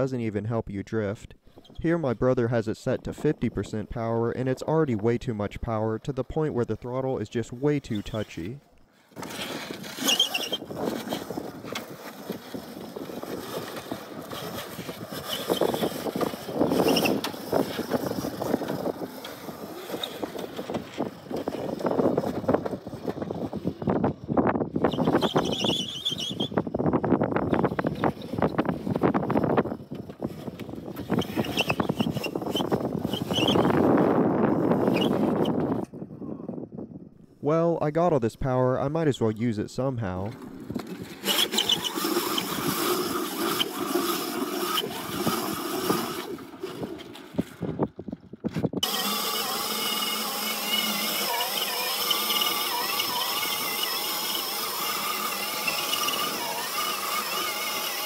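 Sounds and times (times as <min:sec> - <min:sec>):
tyres scrubbing on concrete: 0:48.8 - 0:58.0.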